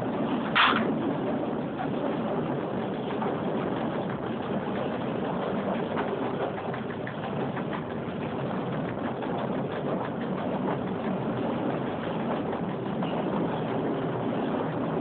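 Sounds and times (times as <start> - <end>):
train motors humming: 0.0 - 15.0
train wheels rolling on rails: 0.0 - 15.0.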